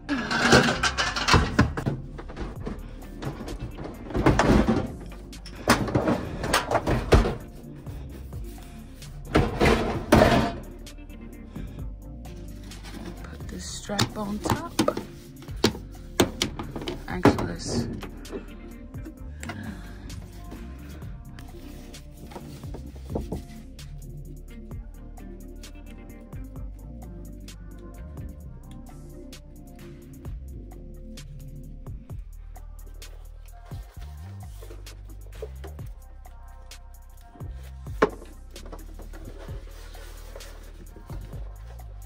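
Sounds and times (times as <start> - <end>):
background music: 0.0 - 42.0.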